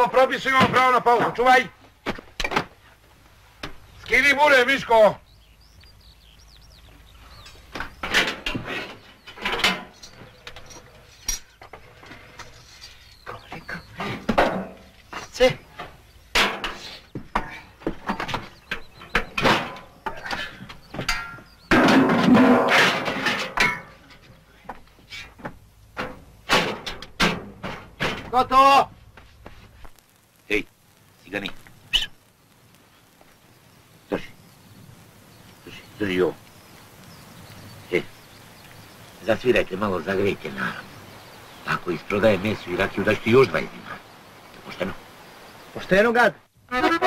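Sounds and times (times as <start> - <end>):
voices: 0.0 - 2.0, 2.6 - 26.6, 27.2 - 47.0
irregular knocks and clatters: 0.5 - 2.9, 6.9 - 30.0.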